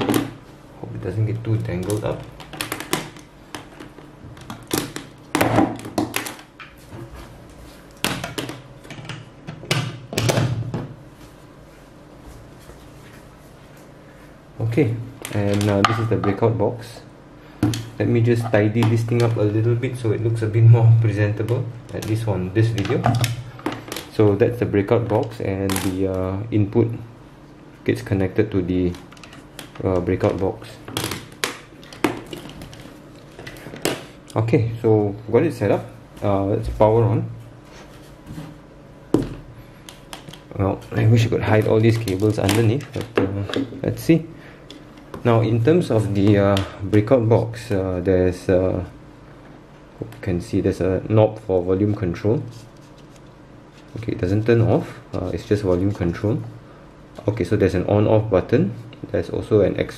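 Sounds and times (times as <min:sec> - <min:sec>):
cables and plastic speaker handled: 0:39.2 - 0:44.0.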